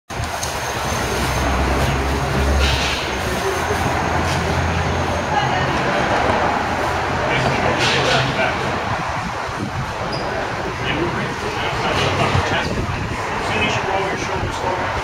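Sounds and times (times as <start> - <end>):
indistinct voices: 0.7 - 15.0.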